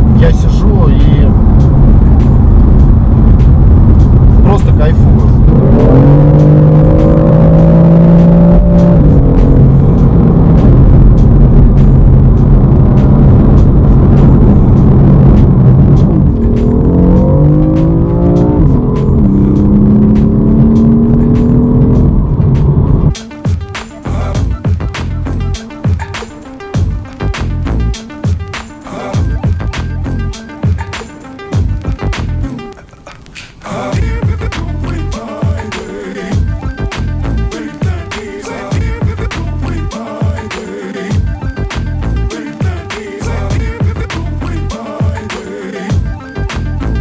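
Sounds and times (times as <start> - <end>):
low road rumble: 0.0 - 47.0
music: 0.0 - 47.0
car engine from inside cabin: 5.1 - 23.1.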